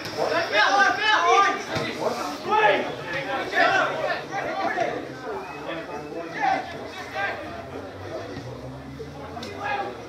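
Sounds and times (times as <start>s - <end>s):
indistinct speech of people: 0.0s - 10.0s.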